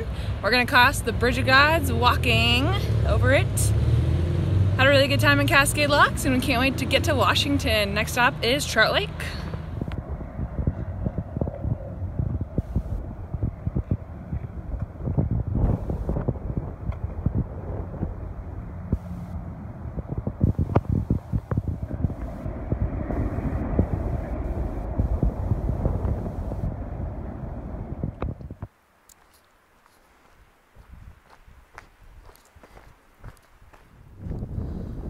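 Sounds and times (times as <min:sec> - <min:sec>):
wind buffeting microphone: 0:00.0 - 0:28.7, 0:30.4 - 0:35.0
traffic rumble: 0:00.0 - 0:35.0.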